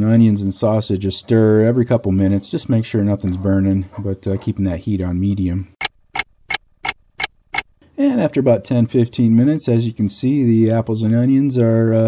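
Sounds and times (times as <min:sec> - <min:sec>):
clock ticking: 0:05.8 - 0:07.8.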